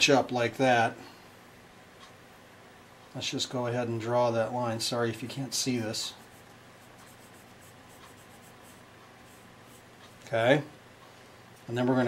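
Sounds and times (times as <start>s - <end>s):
pencil scratching on surface: 6.1s - 10.1s.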